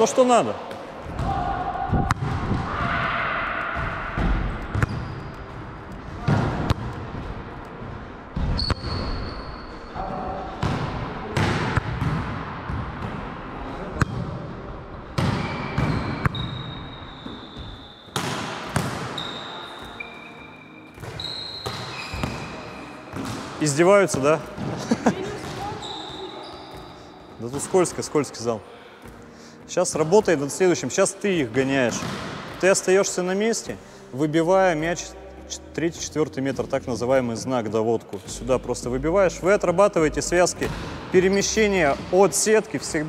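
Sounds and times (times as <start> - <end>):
volleyballs struck and bouncing: 0.6 - 7.4, 10.6 - 14.4, 15.1 - 20.0, 20.9 - 25.8, 31.4 - 33.2, 40.6 - 42.2
sneakers squeaking on floor: 3.8 - 5.6, 8.4 - 9.9, 15.2 - 23.5, 24.1 - 28.0.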